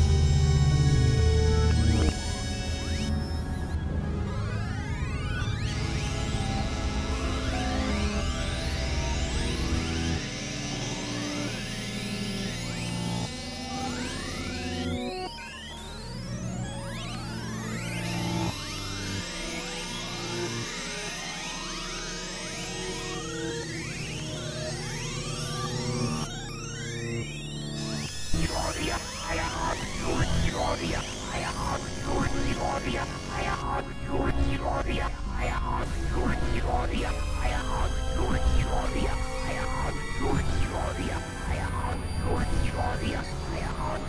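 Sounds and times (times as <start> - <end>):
experimental synthesizer music: 0.0 - 10.2, 22.4 - 44.0.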